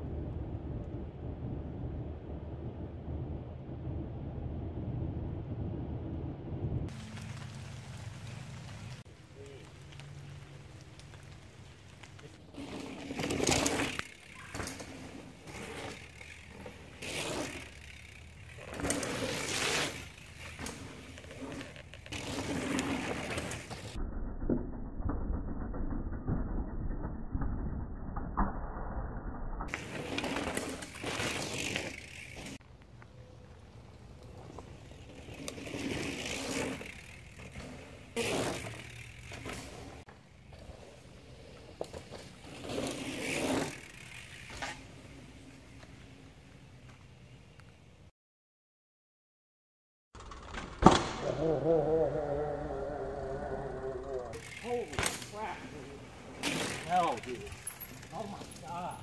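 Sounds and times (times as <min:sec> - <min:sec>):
dull low rumble: 0:00.0 - 0:07.0
bike tyres rolling on dirt: 0:00.0 - 0:28.7, 0:29.6 - 0:48.1, 0:50.2 - 0:59.0.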